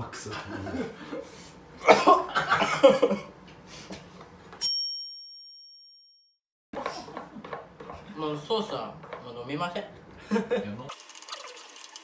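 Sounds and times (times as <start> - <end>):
bell-like ding: 4.6 - 6.4.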